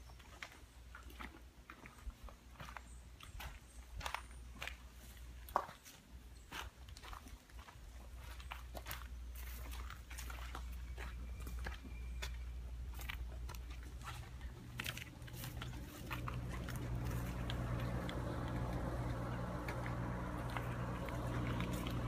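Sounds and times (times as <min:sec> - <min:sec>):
footsteps crunching through leaves: 0:03.5 - 0:22.0
steady low rumble: 0:11.2 - 0:22.0.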